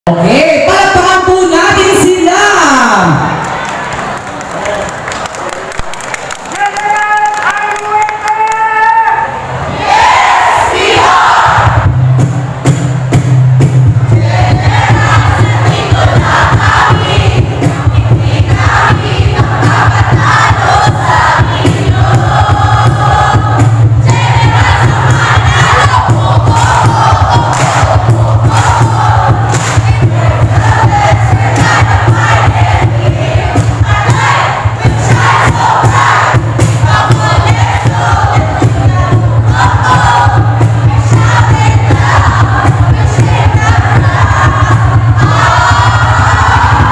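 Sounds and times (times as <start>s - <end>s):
crowd noise: 0.1s - 46.9s
cheer squad shouting in unison: 8.5s - 11.9s, 18.5s - 46.9s
music with thumping beat: 11.4s - 46.9s.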